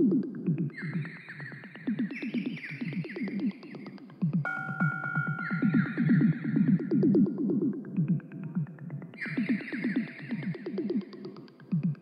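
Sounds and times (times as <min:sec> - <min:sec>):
electronic music with synthesizer: 0:04.5 - 0:07.8.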